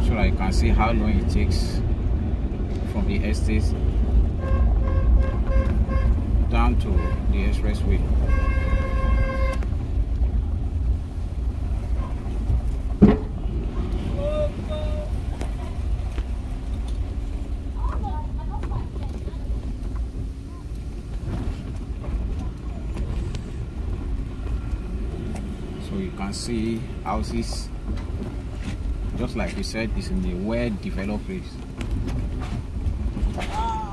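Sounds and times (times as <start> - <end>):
car driving on rough road: 0.0 - 33.9
car horn: 4.4 - 9.8.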